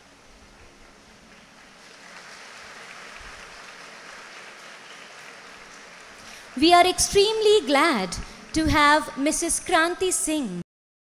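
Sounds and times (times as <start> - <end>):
audience applauding faintly: 0.4 - 9.1.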